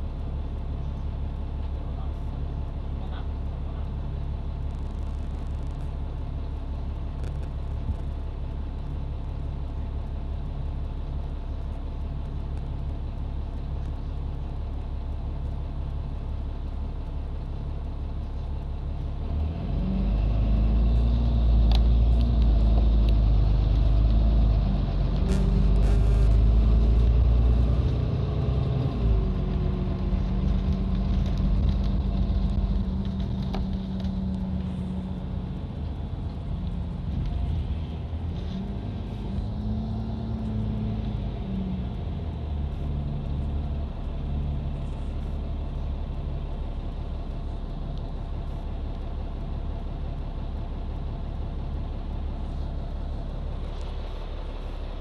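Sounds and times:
bus engine idling and revving: 0.0s - 55.0s.

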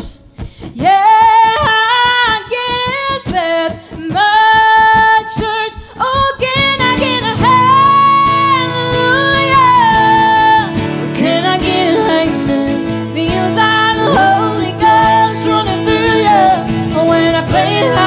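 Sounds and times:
woman singing country song: 0.0s - 18.0s
strummed acoustic guitars: 2.0s - 18.0s.

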